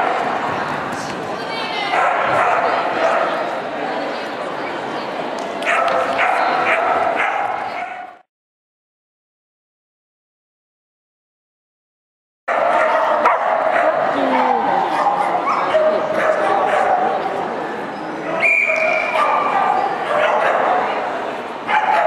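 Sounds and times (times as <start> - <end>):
people talking: 0.0 - 6.8, 13.2 - 21.4
dog barking and yipping: 5.7 - 8.1.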